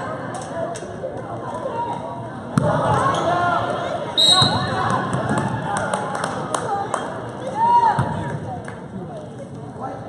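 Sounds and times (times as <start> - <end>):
voices echoing in gymnasium: 0.0 - 10.0
referee's whistle blast: 4.2 - 4.7.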